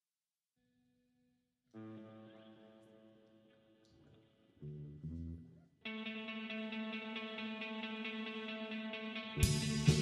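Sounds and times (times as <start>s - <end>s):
low bass notes: 4.6s - 5.6s, 9.4s - 10.0s
electric guitar chord ringing: 5.9s - 10.0s.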